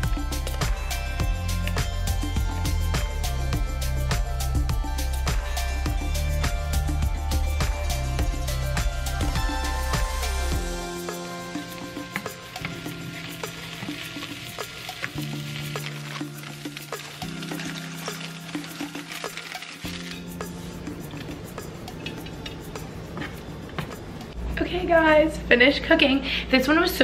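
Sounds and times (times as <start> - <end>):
soft background music: 0.0 - 27.0
mushrooms sizzling in a frying pan: 10.3 - 21.2.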